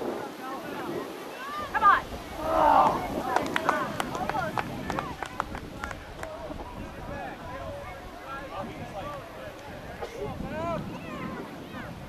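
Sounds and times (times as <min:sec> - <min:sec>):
people shouting: 0:01.4 - 0:04.0.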